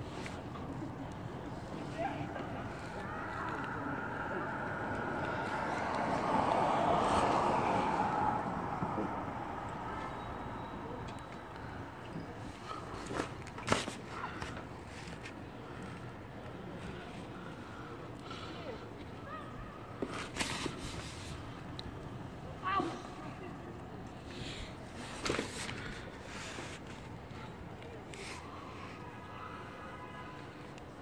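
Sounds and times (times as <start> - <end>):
city street noise: 0.0 - 31.0
vehicle passing: 2.3 - 12.0.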